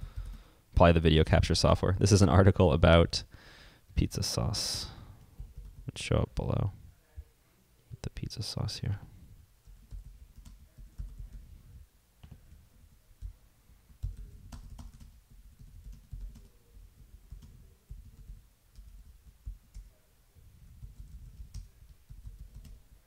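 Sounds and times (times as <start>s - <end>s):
typing on computer keyboard: 0.0s - 0.5s, 5.2s - 5.9s, 9.6s - 11.5s, 13.2s - 19.9s, 20.7s - 22.8s.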